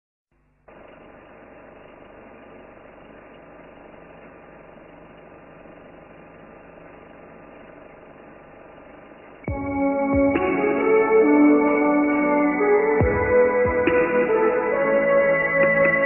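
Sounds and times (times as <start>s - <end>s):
faint low hum: 0.3s - 9.6s.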